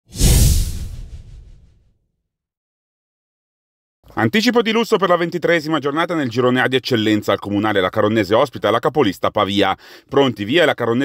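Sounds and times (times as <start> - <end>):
deep low rumble: 0.1 - 1.8
whoosh transition effect: 0.1 - 1.8.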